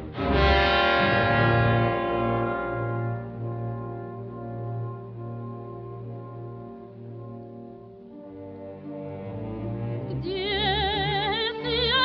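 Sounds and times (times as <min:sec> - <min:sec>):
orchestra holding sustained chord: 0:00.0 - 0:11.8.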